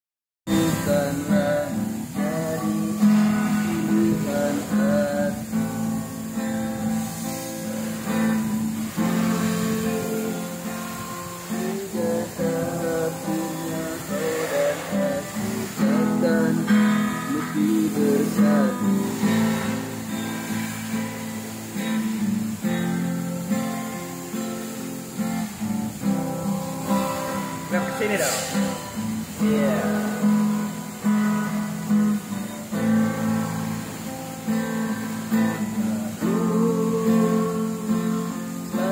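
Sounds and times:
fingerstyle acoustic guitar: 0.5 - 38.9.

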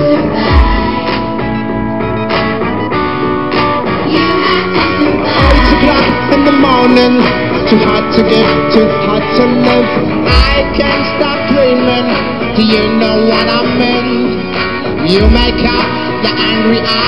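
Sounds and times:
rock band playing live: 0.0 - 17.0
heavy low bass hit: 10.3 - 11.0.

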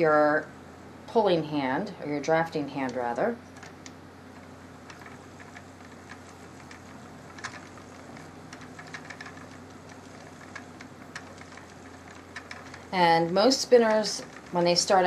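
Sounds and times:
low steady hum: 0.0 - 15.0
spinning wheel ticks and clicks: 2.8 - 15.0.

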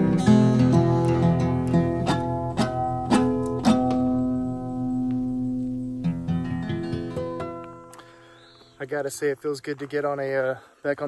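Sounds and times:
acoustic guitar picked and strummed: 0.0 - 8.4.

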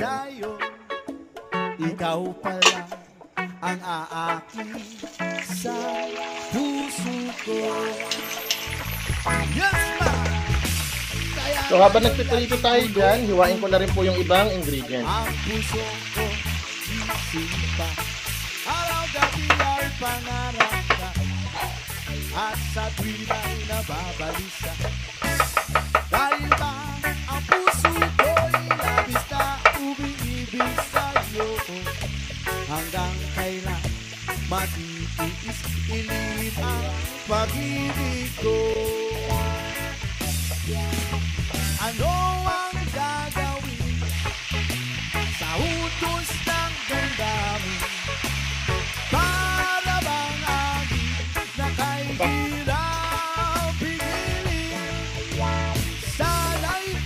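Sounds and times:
fish sizzling in hot oil: 4.3 - 57.0.

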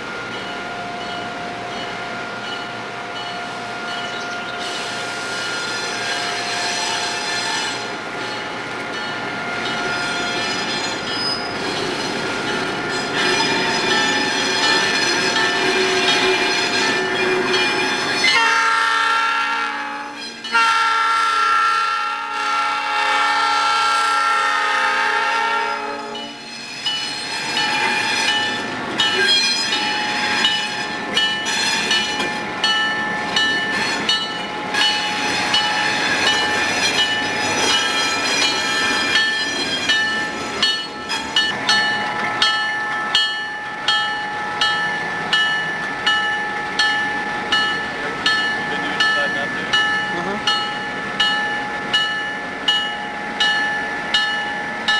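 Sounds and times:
train running on track: 0.0 - 54.9
locomotive horn blasts: 18.3 - 26.5.

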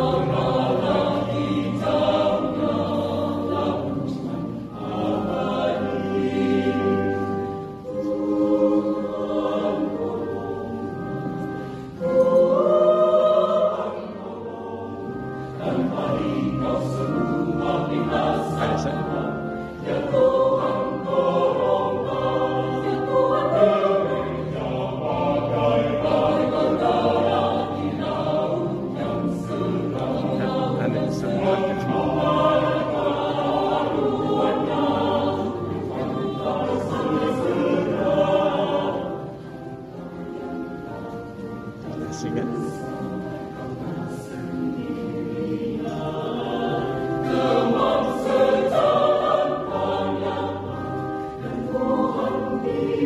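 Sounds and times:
mixed choir singing: 0.0 - 53.0.

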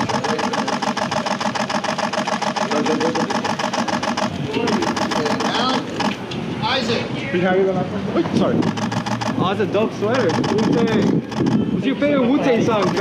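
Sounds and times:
rapid mechanical rattle: 0.0 - 6.2, 8.6 - 11.7, 12.6 - 13.0
voices: 0.0 - 13.0.

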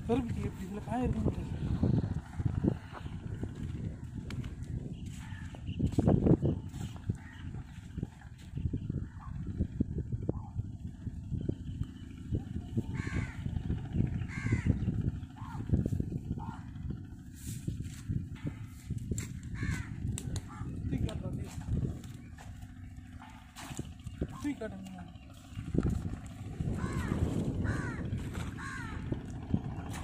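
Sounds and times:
low uneven rumble: 0.0 - 30.0.

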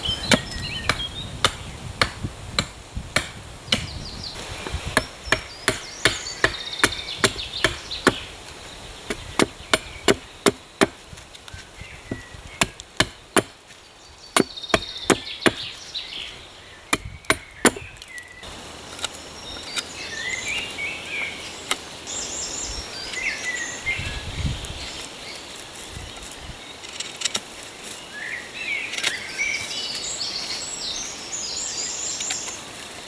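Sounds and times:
birds chirping: 0.0 - 2.3, 3.2 - 32.8
hatchet chopping wood: 0.3 - 3.9, 4.6 - 8.3, 9.1 - 11.2, 12.1 - 13.6, 14.4 - 15.8, 16.9 - 17.9.

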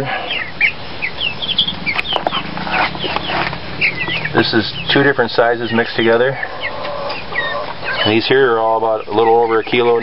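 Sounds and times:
chickens clucking: 0.0 - 10.0
chicks peeping: 0.0 - 10.0.

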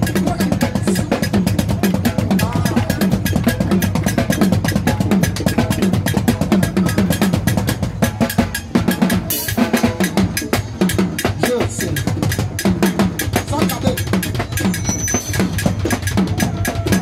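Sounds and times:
drum kit played fast: 0.0 - 17.0.

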